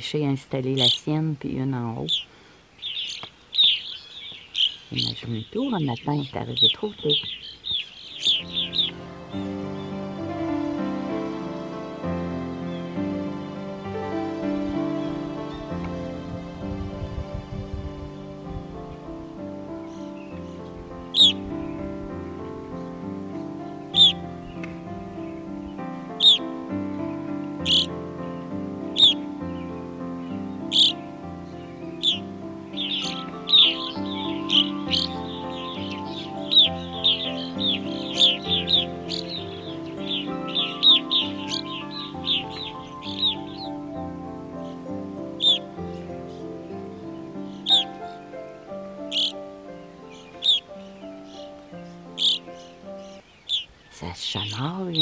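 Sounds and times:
birds calling sharply: 0:00.0 - 0:15.7, 0:18.1 - 0:55.0
soft instrumental music: 0:08.1 - 0:55.0.

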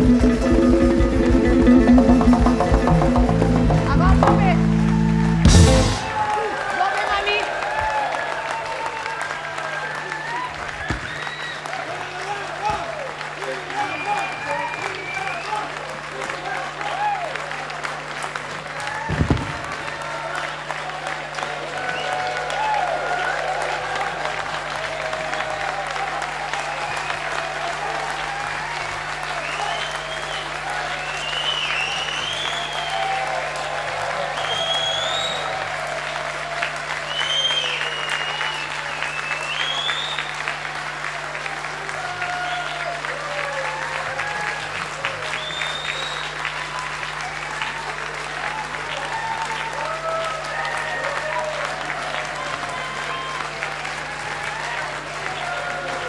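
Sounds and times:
audience applauding: 0:00.0 - 0:56.0
cheering voices: 0:00.0 - 0:56.0
whistling: 0:10.8 - 0:11.6, 0:13.8 - 0:15.7, 0:21.8 - 0:22.3, 0:26.7 - 0:27.3, 0:29.4 - 0:33.3, 0:34.4 - 0:35.6, 0:37.0 - 0:40.5, 0:45.2 - 0:46.8, 0:52.7 - 0:53.5.

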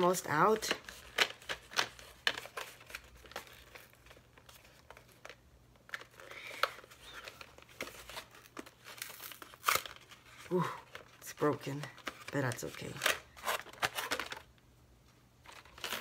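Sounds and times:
plastic packaging crinkling: 0:00.0 - 0:14.6, 0:15.4 - 0:16.0
sharp crack of packaging: 0:06.0 - 0:10.1, 0:12.9 - 0:14.5, 0:15.5 - 0:16.0.

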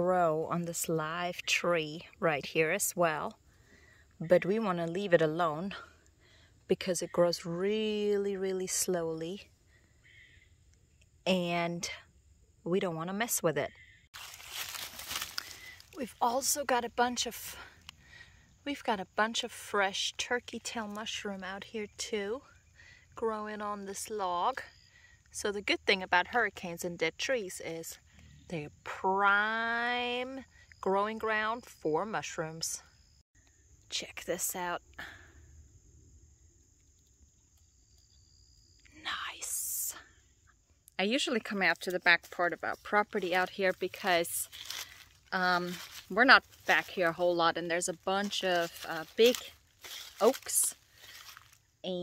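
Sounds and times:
high-pitched insect chorus: 0:00.4 - 0:52.0
footsteps crunching dry leaves: 0:14.1 - 0:16.1, 0:42.2 - 0:51.7.

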